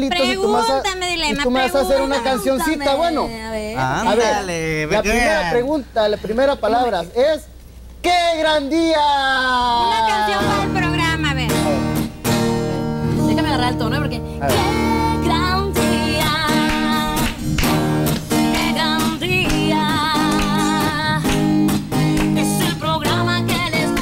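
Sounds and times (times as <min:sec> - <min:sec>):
woman singing with vibrato: 0:09.8 - 0:11.6, 0:13.1 - 0:17.4, 0:18.4 - 0:21.6, 0:22.3 - 0:24.0
strummed acoustic guitar: 0:10.1 - 0:24.0.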